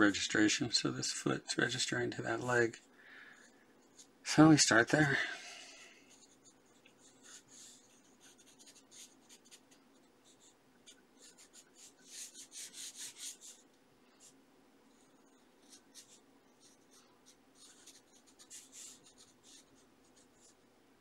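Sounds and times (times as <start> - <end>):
pencil scratching on paper: 6.1 - 13.6, 14.2 - 20.6.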